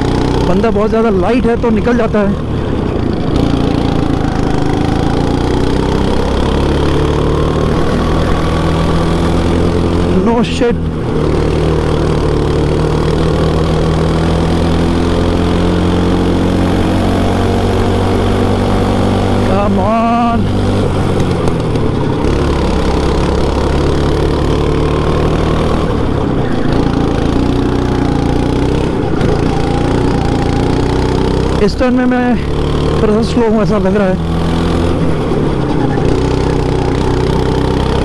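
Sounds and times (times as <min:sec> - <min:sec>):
go-kart engine revving: 0:00.0 - 0:38.0.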